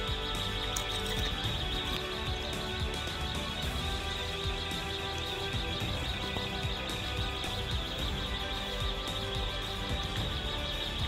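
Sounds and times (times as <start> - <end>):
background music of held tones: 0.0 - 11.0.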